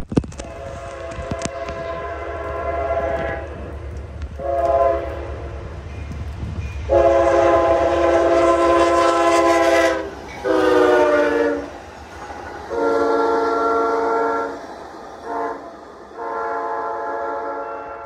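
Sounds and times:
low train rumble: 0:00.0 - 0:18.0
locomotive air horn blasts: 0:00.3 - 0:03.8, 0:04.4 - 0:05.7, 0:06.8 - 0:11.8, 0:12.7 - 0:14.6, 0:15.2 - 0:18.0.

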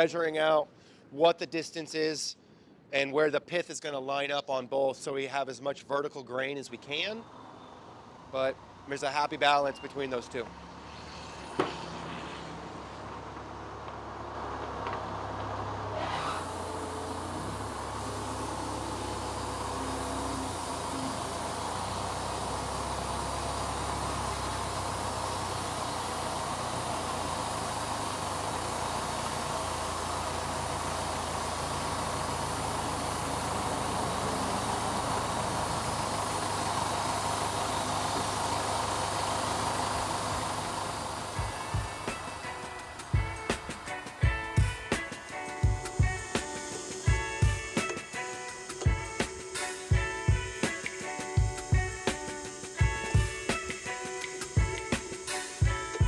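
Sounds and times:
forklift engine running: 0:07.3 - 0:56.0.

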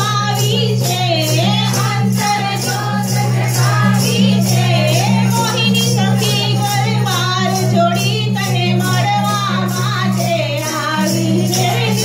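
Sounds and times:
hand claps: 0:00.0 - 0:04.7
woman singing into microphone: 0:00.0 - 0:12.0.

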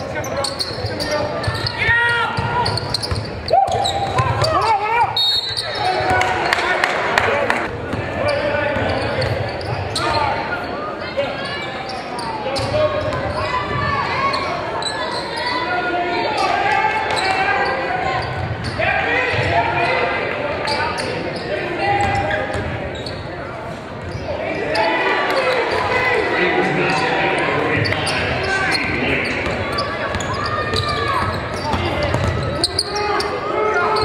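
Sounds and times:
people shouting in a hall: 0:00.9 - 0:22.5, 0:24.3 - 0:28.8, 0:29.6 - 0:34.0.

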